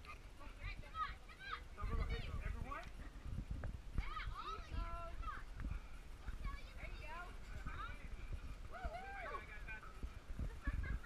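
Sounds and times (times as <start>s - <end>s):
distant people calling and shouting: 0.0s - 11.0s
low uneven rumble: 0.0s - 11.0s.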